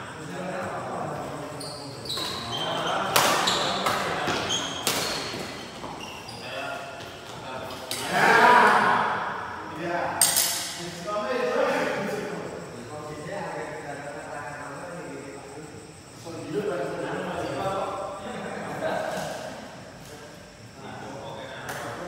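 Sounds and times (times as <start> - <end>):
shoe squeaks on court: 1.5 - 6.7.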